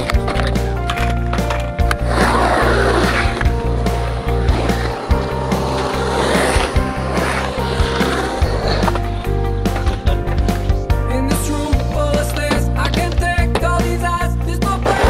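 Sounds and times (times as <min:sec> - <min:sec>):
background music with bass line: 0:00.0 - 0:15.0
skateboard wheels rolling on concrete: 0:00.0 - 0:15.0.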